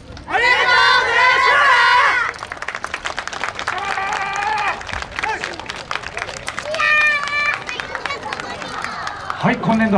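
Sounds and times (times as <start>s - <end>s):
audience clapping: 2.1s - 9.9s
voices: 3.7s - 9.9s.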